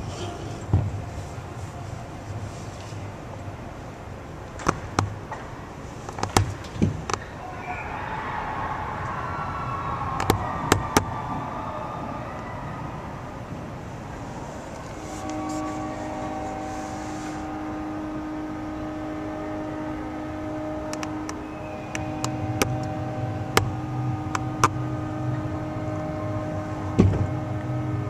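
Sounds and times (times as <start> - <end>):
crowd cheering: 7.3 - 13.8, 17.4 - 28.0
steady horn tone: 14.0 - 28.0.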